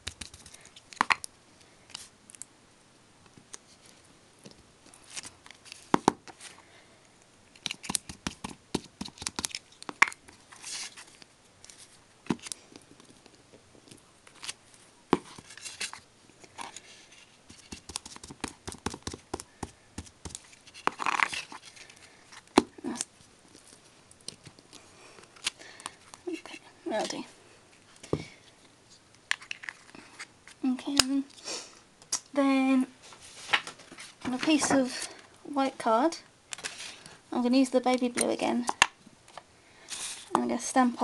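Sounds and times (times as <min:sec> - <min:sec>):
paper rustling: 0:14.3 - 0:19.6, 0:33.0 - 0:35.2.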